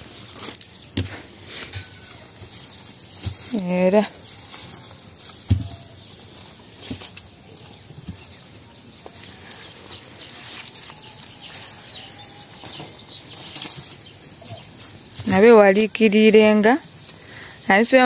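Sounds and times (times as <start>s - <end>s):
dry stalks rustling: 0.0s - 18.0s.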